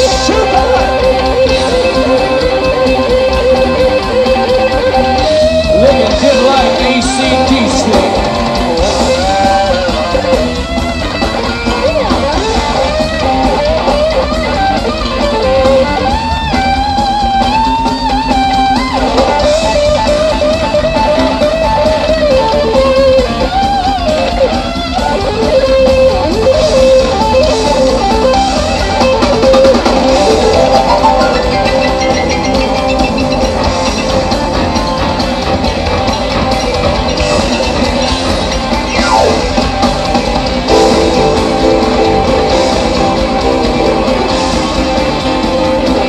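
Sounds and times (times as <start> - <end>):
electric guitar lead: 0.0 - 46.0
live rock band playing: 0.0 - 46.0.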